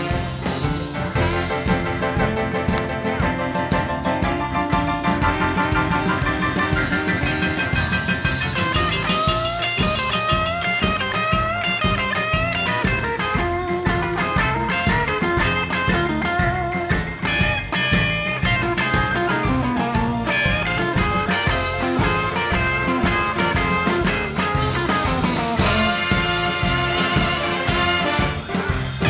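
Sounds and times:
rhythm and blues band playing: 0.0s - 29.0s
electric guitar solo: 4.2s - 29.0s.

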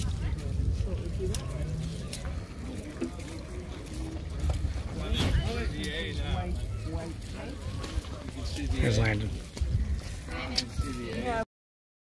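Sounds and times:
wind rumbling on microphone: 0.0s - 11.4s
people talking: 0.0s - 11.5s.

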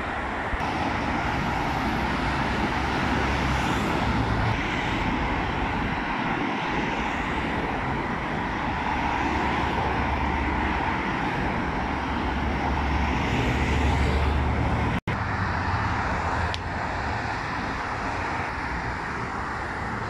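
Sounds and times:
heavy highway traffic: 0.0s - 20.0s.

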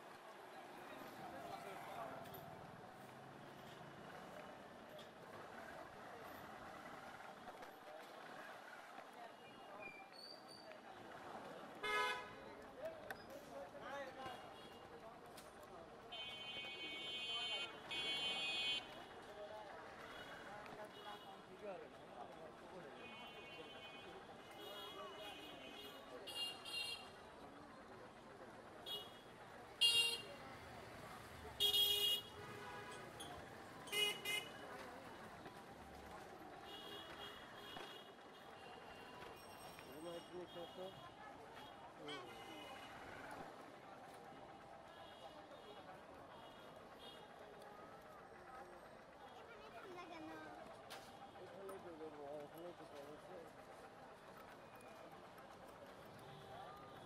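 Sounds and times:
traffic din: 0.0s - 10.1s, 10.7s - 57.0s
people's voices: 0.0s - 57.0s
vehicle horns honking: 11.8s - 12.3s, 31.6s - 33.1s, 33.9s - 34.6s.

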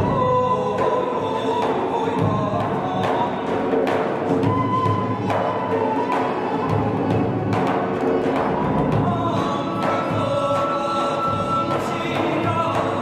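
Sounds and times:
double-headed drum strokes: 0.0s - 13.0s
frame drum: 0.0s - 13.0s
reed wind instruments melody: 4.2s - 9.8s.

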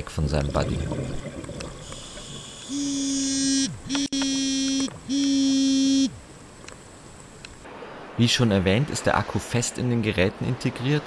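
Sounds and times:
underwater alert buzzes: 1.4s - 7.6s.

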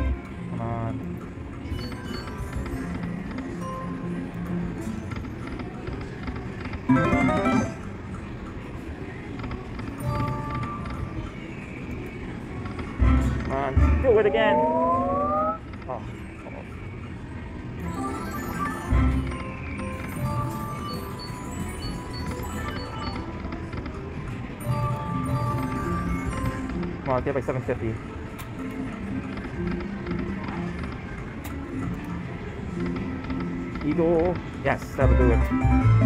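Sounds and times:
slot machine electronic music: 0.0s - 5.4s, 6.8s - 8.4s, 10.0s - 11.2s, 13.0s - 15.7s, 17.8s - 23.4s, 24.5s - 28.0s, 34.9s - 36.0s
other casino machines: 0.0s - 36.0s
rising electronic tones: 13.8s - 15.7s.

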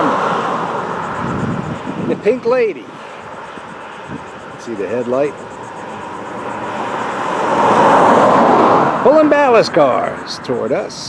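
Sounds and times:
vehicle tyre and road noise: 0.0s - 11.0s.

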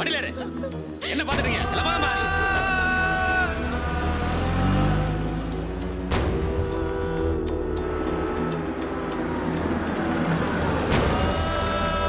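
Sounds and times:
background music: 0.0s - 12.0s
vehicle engine revving: 2.4s - 12.0s.

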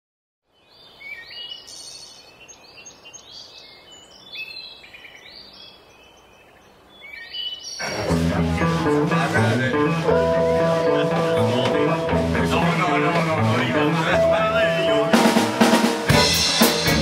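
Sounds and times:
songbirds chirping and singing: 0.5s - 15.7s
outdoor ambience hiss: 0.5s - 17.0s.

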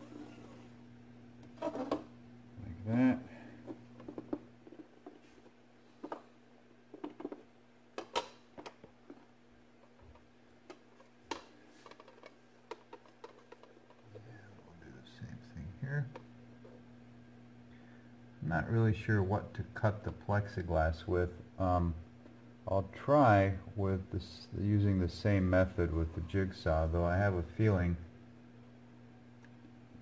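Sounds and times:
low electrical hum: 0.0s - 30.0s.

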